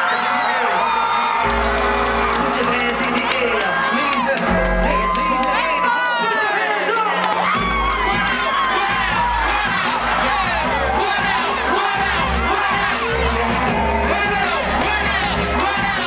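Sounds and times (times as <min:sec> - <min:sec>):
crowd screaming and cheering: 0:00.0 - 0:16.0
deep steady bass: 0:01.5 - 0:05.8, 0:07.6 - 0:16.0.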